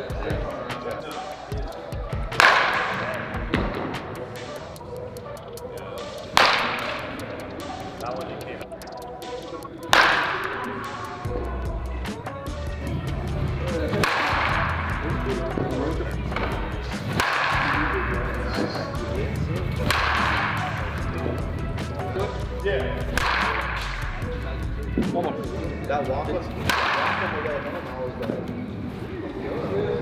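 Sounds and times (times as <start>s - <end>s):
background music with low beat: 0.0s - 28.7s
baseball bat cracking ball: 2.3s - 4.6s, 6.2s - 7.8s, 9.9s - 11.1s, 13.9s - 15.7s, 16.3s - 18.0s, 19.7s - 21.1s, 23.0s - 24.2s, 26.6s - 27.8s.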